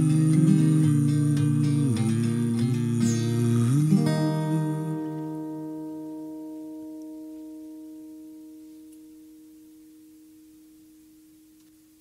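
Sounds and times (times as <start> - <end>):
acoustic guitar chord ringing: 0.0 - 11.5.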